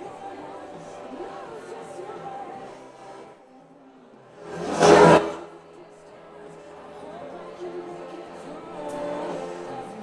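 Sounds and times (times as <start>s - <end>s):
faint background music: 0.0s - 10.0s
loud whoosh: 4.4s - 5.6s.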